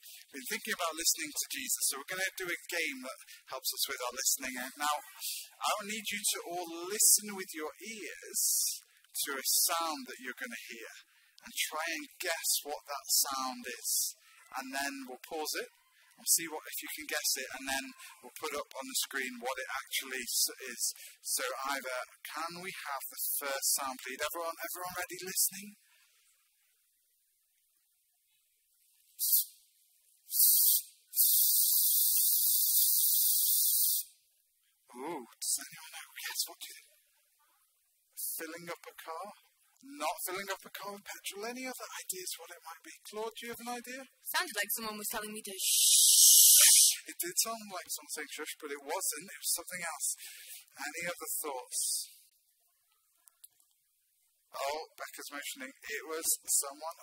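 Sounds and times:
aerosol can spraying: 0:45.7 - 0:46.9.

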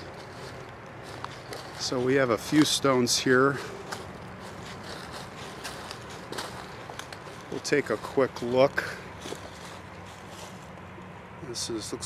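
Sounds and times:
footsteps crunching dry leaves: 0:00.0 - 0:11.9.

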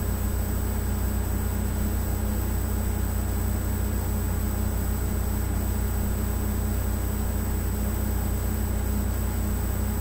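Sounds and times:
faint high whine: 0:00.0 - 0:10.0
steady low hum: 0:00.0 - 0:10.0.

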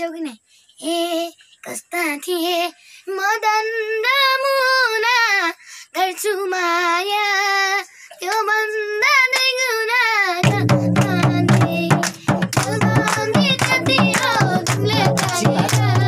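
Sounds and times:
boy singing unaccompanied: 0:00.0 - 0:16.0
hand claps: 0:08.3 - 0:08.5, 0:09.3 - 0:09.6, 0:10.4 - 0:16.0
instrumental music with beat: 0:10.4 - 0:16.0.

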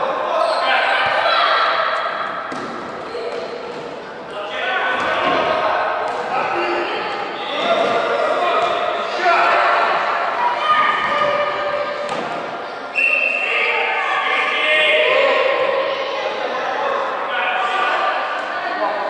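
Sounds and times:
children shouting in gym: 0:00.6 - 0:02.3, 0:08.5 - 0:12.1.

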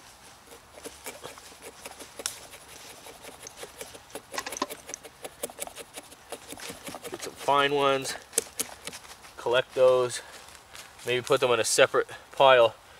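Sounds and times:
wood shavings crackling: 0:00.0 - 0:11.4
axe scraping wood: 0:00.5 - 0:09.1.

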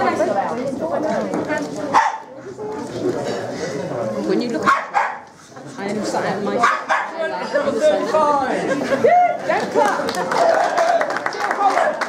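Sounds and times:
people talking: 0:00.0 - 0:04.8, 0:05.6 - 0:12.0
dog barking: 0:01.9 - 0:02.3, 0:04.6 - 0:05.3, 0:06.6 - 0:07.2.

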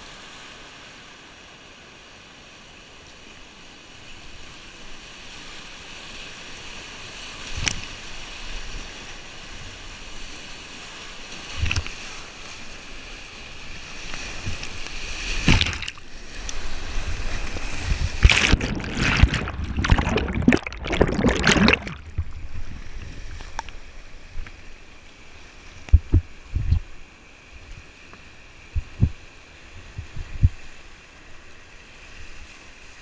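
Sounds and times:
heavy splashing and churning water: 0:04.8 - 0:27.3
water splashing against camera: 0:11.5 - 0:12.1, 0:14.0 - 0:24.6, 0:25.8 - 0:26.9.

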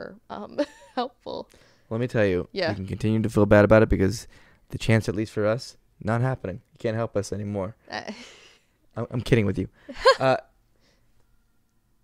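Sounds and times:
woman laughing: 0:00.5 - 0:01.1, 0:07.9 - 0:08.6, 0:09.9 - 0:10.4.

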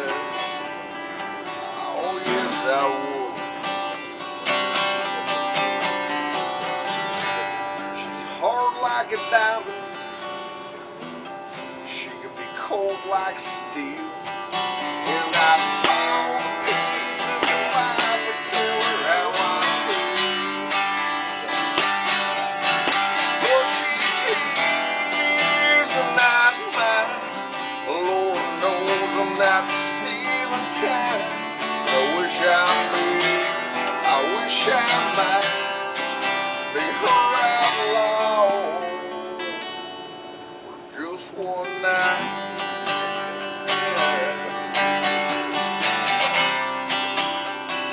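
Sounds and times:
acoustic guitar strumming: 0:00.0 - 0:47.9.

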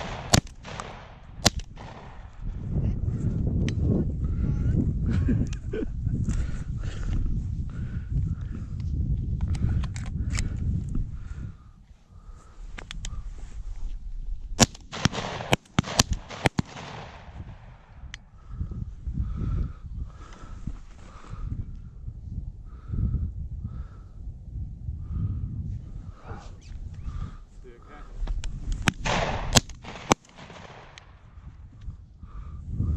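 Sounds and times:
shotgun shots: 0:00.0 - 0:02.4, 0:14.6 - 0:17.9, 0:28.8 - 0:31.2
wind rumbling on microphone: 0:00.0 - 0:32.9.

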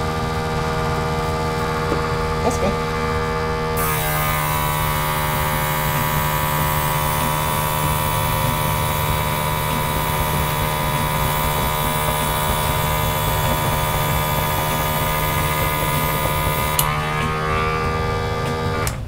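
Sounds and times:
airbrush hissing: 0:03.8 - 0:17.2
airbrush compressor running: 0:03.8 - 0:18.9.

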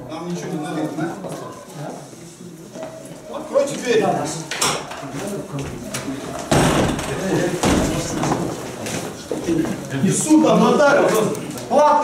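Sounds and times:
glass door clicks and clatter: 0:06.5 - 0:08.1.

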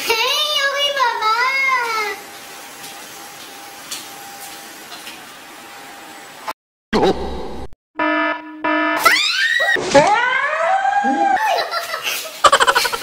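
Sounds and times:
short buzzer tones: 0:08.0 - 0:09.0
woman shrieking: 0:09.0 - 0:11.6
bursts of laughter: 0:11.3 - 0:13.0.

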